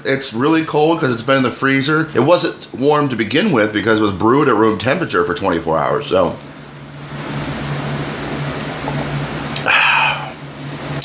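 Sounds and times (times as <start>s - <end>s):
man breathing out: 9.6s - 10.4s.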